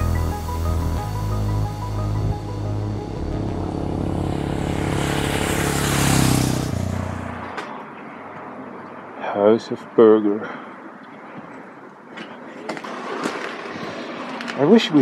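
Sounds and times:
background music: 0.0 - 6.5
faint outdoor background noise: 0.0 - 15.0
vehicle passing by: 0.7 - 8.0
man talking: 9.2 - 10.6, 14.6 - 15.0.

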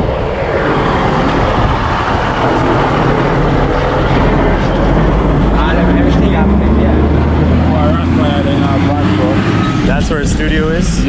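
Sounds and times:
diesel truck engine rumbling: 0.0 - 11.0
voices talking: 0.4 - 11.0.

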